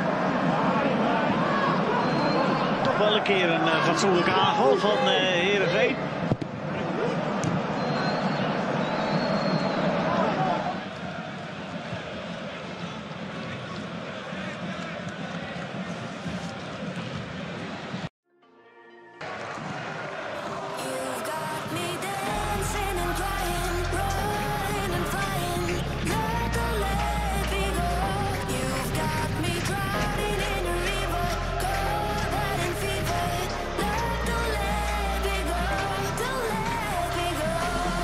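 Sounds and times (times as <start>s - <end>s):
football broadcast stadium noise: 0.0s - 18.1s, 19.2s - 38.0s
background music: 18.3s - 38.0s
heavy bass beat: 22.3s - 38.0s.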